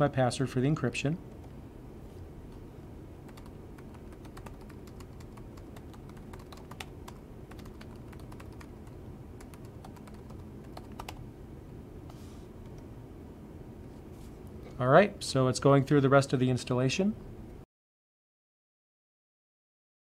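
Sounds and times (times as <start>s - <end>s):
laptop keyboard typing: 3.3s - 11.2s.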